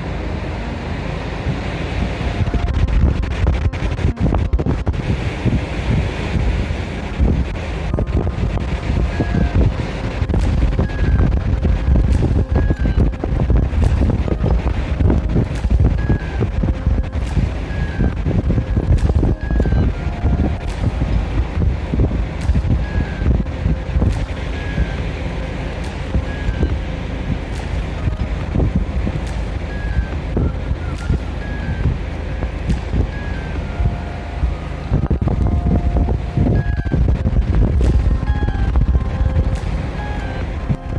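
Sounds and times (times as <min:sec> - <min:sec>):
wind buffeting microphone: 0:00.0 - 0:40.9
faint short musical tones: 0:00.4 - 0:05.6, 0:06.9 - 0:40.9.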